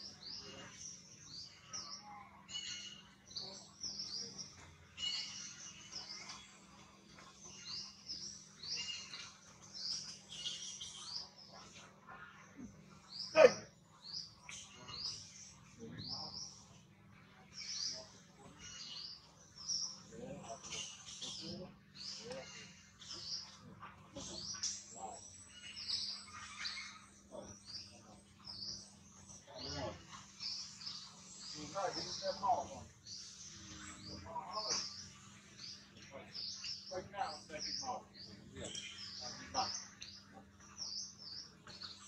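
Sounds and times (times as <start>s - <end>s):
birds chirping: 0.0s - 42.0s.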